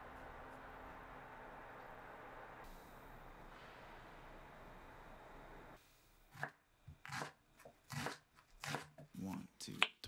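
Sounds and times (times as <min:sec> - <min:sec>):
knife chopping on wooden board: 0:06.3 - 0:09.4.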